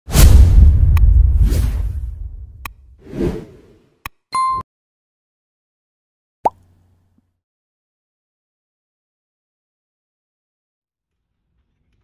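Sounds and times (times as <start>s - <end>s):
deep rumbling boom: 0.1s - 2.6s.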